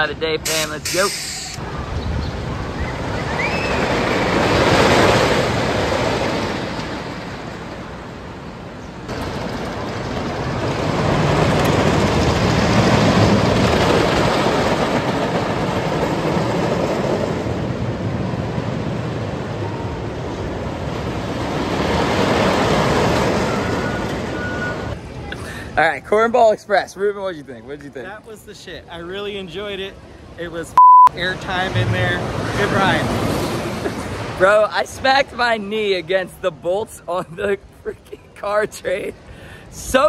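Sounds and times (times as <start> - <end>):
roller coaster rolling on track: 1.6 - 25.2, 31.2 - 40.0.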